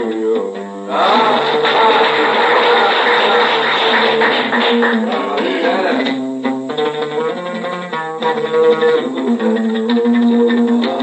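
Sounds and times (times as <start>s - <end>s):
person singing: 0.0s - 6.6s, 8.7s - 11.0s
oud playing: 0.0s - 11.0s
listeners calling out: 0.9s - 6.2s.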